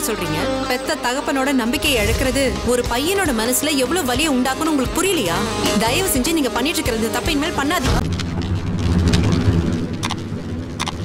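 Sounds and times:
fire crackles: 7.9s - 11.0s
roaring fire rumble: 7.9s - 11.0s.

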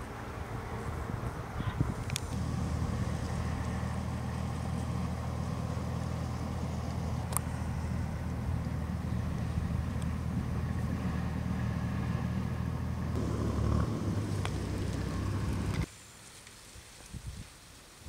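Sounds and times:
road traffic rumble: 0.0s - 16.2s.

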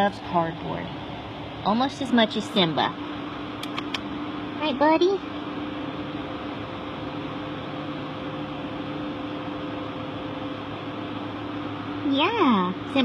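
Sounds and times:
machine hum with hiss: 0.0s - 13.0s.

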